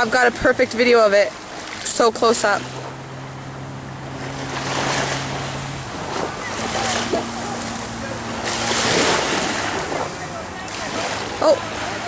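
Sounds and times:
surf washing on a beach: 0.0 - 12.0
wind rumbling on microphone: 0.0 - 12.0.

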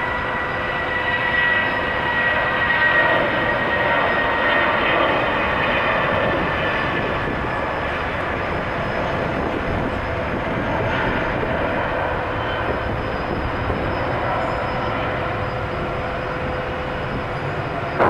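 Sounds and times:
jet engine rumble with whine: 0.0 - 18.0.

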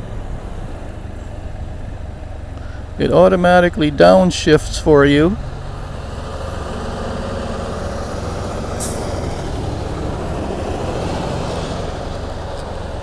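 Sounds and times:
wind and road noise: 0.0 - 13.0.

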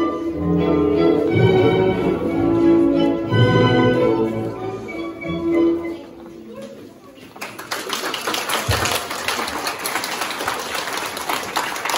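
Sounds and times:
crowd applause: 7.4 - 11.9.

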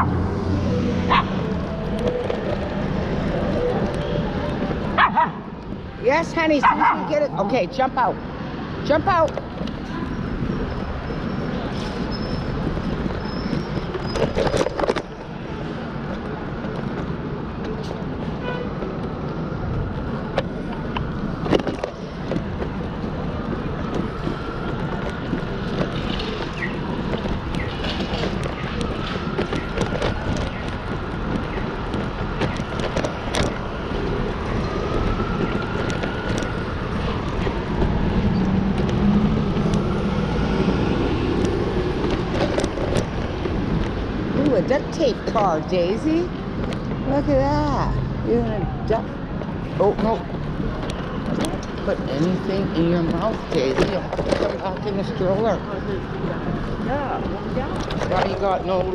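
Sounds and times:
passing cars rumble: 0.0 - 58.9.

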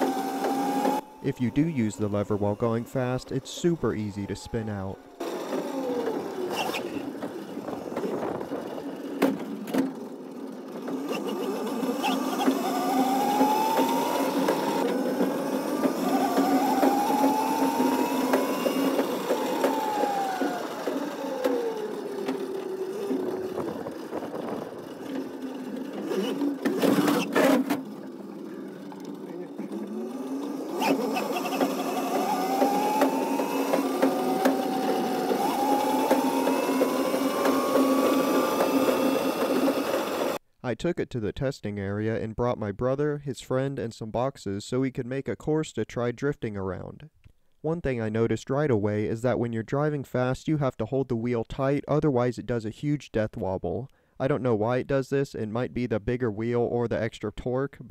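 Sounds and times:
electric motor whining: 0.0 - 40.4.

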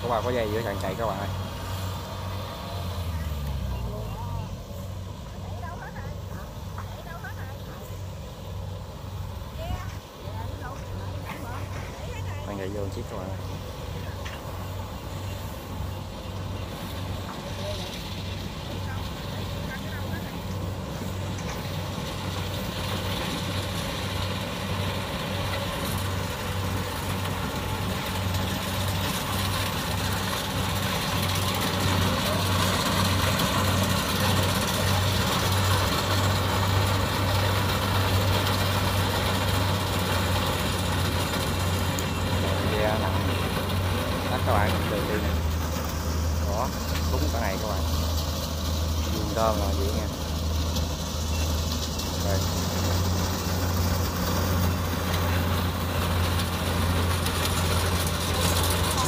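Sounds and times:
combine harvester running: 0.0 - 59.0.

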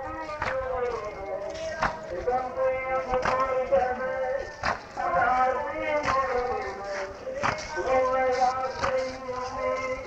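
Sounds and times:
mourners beating chests: 0.0 - 10.0.

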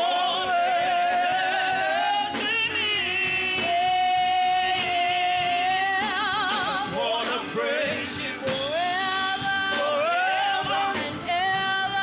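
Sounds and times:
gospel choir singing: 0.0 - 12.0
keyboard: 0.0 - 12.0.

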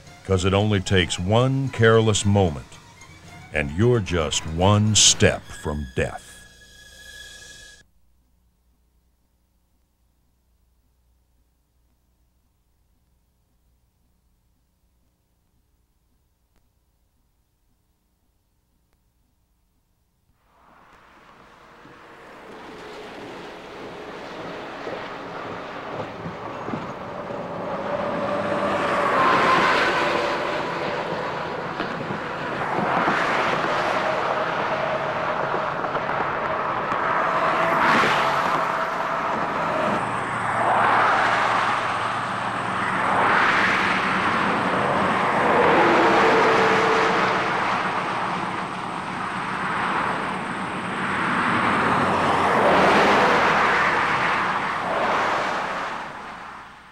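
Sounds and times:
highway vehicles passing: 0.0 - 7.6, 20.5 - 56.9.

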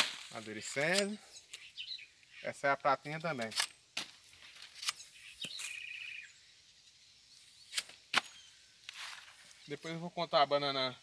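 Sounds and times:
bird trill: 1.2 - 2.6, 4.4 - 6.6, 7.4 - 8.7.

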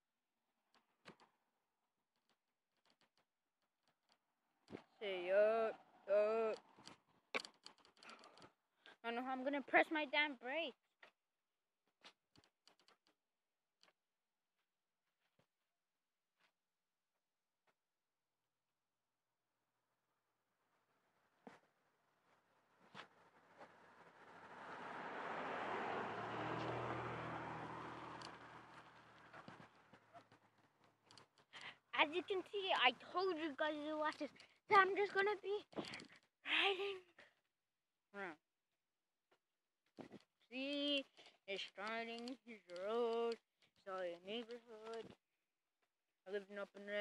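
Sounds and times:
faint ticks and scrapes: 2.1 - 5.1, 6.6 - 11.2, 27.8 - 36.3, 39.9 - 45.2
car passing: 4.8 - 7.3, 22.3 - 31.2.

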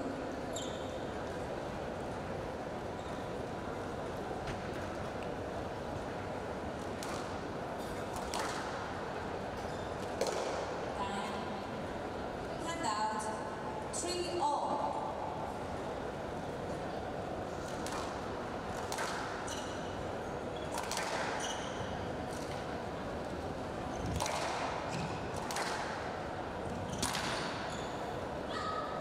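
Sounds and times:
shoe squeaks on court floor: 0.5 - 1.0, 9.6 - 10.0, 21.4 - 21.9, 26.8 - 28.1
rackets smacking squash ball: 8.1 - 8.8, 10.0 - 10.7, 17.6 - 19.7, 20.7 - 21.6, 24.0 - 26.1, 26.9 - 27.6.

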